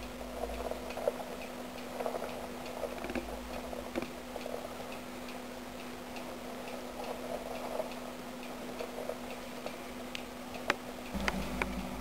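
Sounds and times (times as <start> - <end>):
faint regular ticking: 0.0 - 12.0
steady low hum: 0.0 - 12.0.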